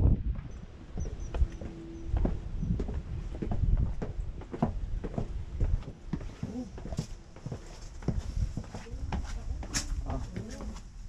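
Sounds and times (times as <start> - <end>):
low microphone rumble: 0.0 - 7.1
footsteps on brick and stone: 0.1 - 11.0.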